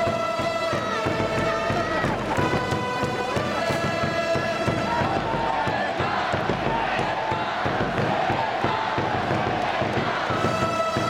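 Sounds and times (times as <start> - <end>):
drumbeat: 0.0 - 11.0
fans chanting: 0.0 - 11.0
trumpets playing cheer melody: 0.0 - 11.0.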